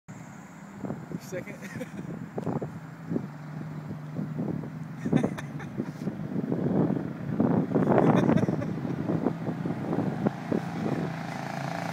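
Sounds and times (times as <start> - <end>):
vehicle engine running: 0.1 - 11.9
wind buffeting microphone: 0.7 - 11.9.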